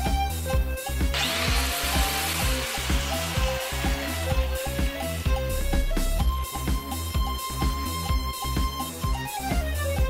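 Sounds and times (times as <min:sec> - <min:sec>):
electric angle grinder whirring: 0:01.1 - 0:06.3.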